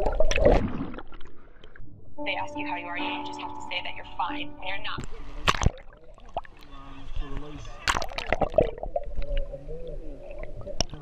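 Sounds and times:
muffled voices heard underwater: 2.3 - 11.0.

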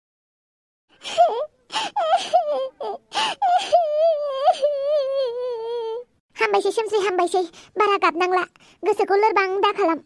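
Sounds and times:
girl sobbing and wailing: 0.9 - 6.1.

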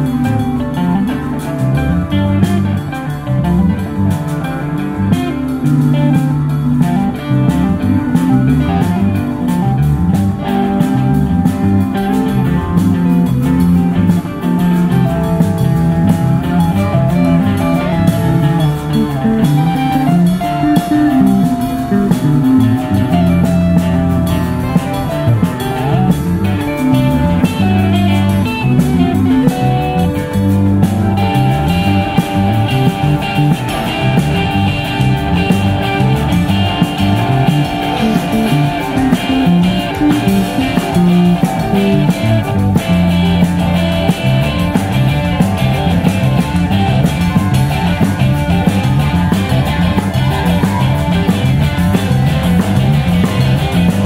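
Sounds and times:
bass line: 0.0 - 54.0
drum kit: 0.0 - 54.0
electric guitar riffing: 0.0 - 54.0.

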